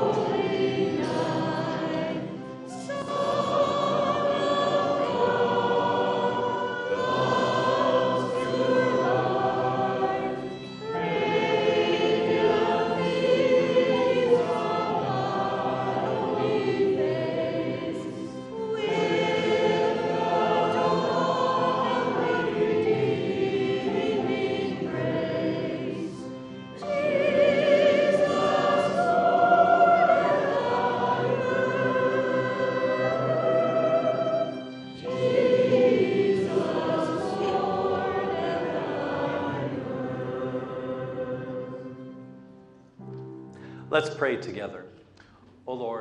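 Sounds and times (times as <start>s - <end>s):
group singing a carol: 0.0s - 43.0s.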